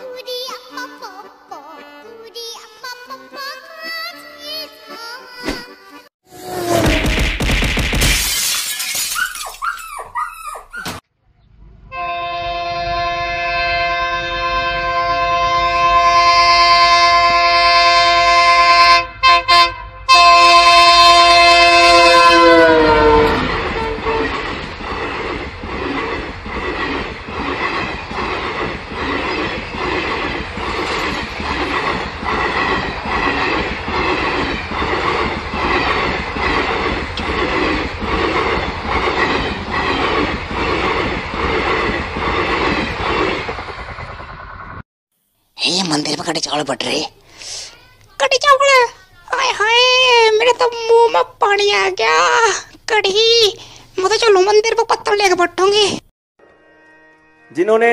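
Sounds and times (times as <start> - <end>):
train horn: 11.8 - 24.5, 56.4 - 57.9
railcar wheels clicking over joints: 23.6 - 44.2.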